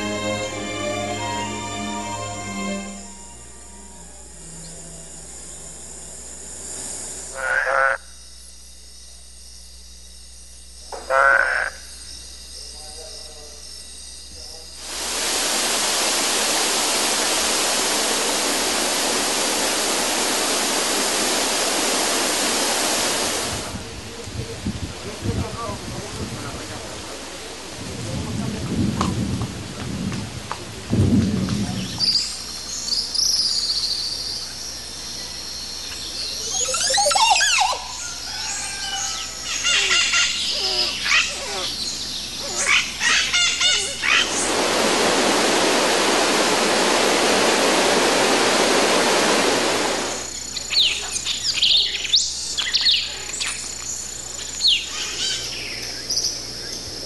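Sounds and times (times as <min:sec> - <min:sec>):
steady rushing noise: 0:14.8 - 0:32.0, 0:44.1 - 0:50.4
birds calling: 0:31.8 - 0:44.6, 0:50.1 - 0:57.0.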